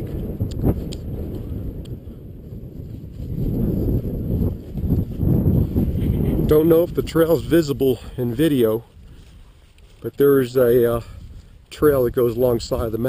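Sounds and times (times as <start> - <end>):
footsteps through dry grass: 0.0 - 13.0
wind buffeting microphone: 0.0 - 13.0.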